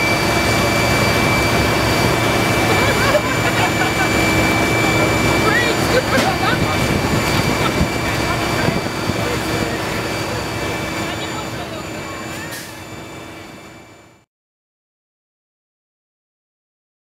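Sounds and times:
jet turbine whine and rumble: 0:00.0 - 0:14.3
faint voices: 0:00.1 - 0:12.9.

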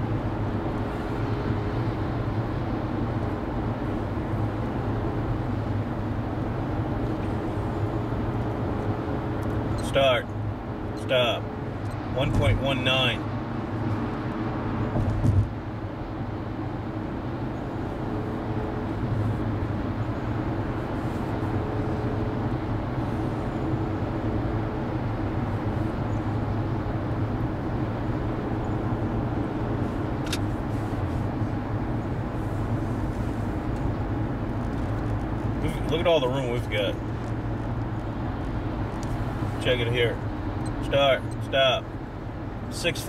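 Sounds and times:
car cruising road noise: 0:00.0 - 0:43.0
thump: 0:15.0 - 0:15.5.

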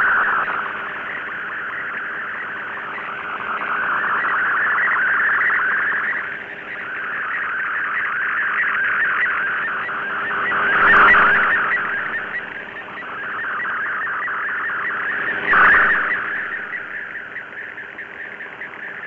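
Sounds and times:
rapidly shifting data tones: 0:00.0 - 0:19.0.

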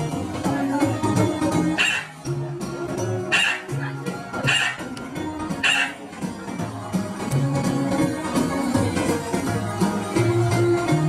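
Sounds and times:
background music with stepping bass: 0:00.0 - 0:11.0.

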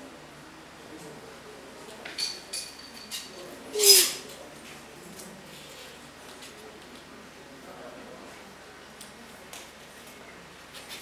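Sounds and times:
sharp scraping noise: 0:03.8 - 0:04.3.

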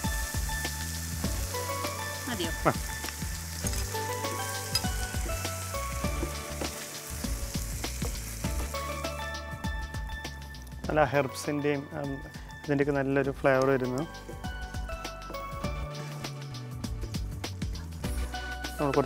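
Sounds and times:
vegetables sizzling in a frying pan: 0:00.0 - 0:10.8, 0:11.9 - 0:19.0
soft instrumental music: 0:00.0 - 0:19.0.

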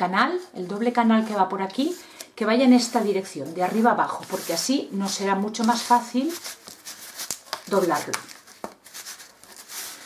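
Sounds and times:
cardboard rubbing and rustling: 0:02.8 - 0:10.0.

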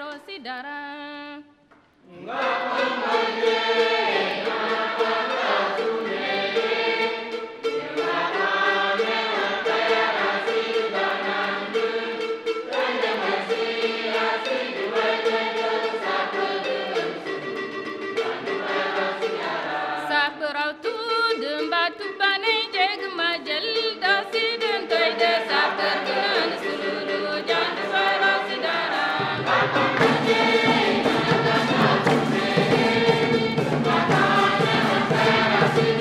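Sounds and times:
choir singing a hymn: 0:02.1 - 0:20.6, 0:24.3 - 0:36.0.

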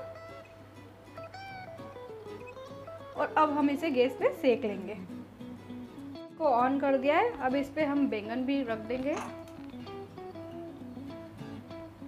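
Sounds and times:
plucked guitar melody: 0:00.0 - 0:12.0.

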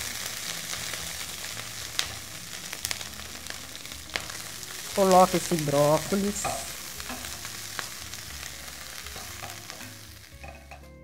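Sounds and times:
vegetables sizzling in hot oil: 0:00.0 - 0:11.0.

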